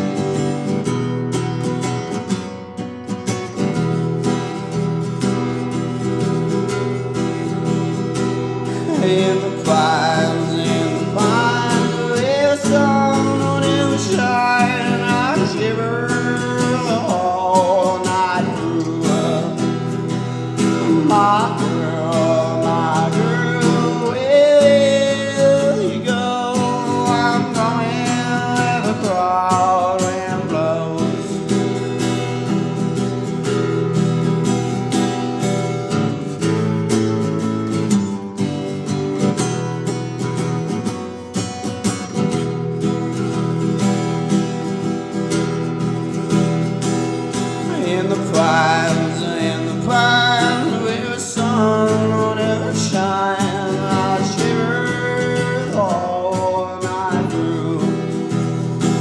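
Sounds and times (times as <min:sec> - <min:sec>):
acoustic guitar chords: 0:00.0 - 0:59.0.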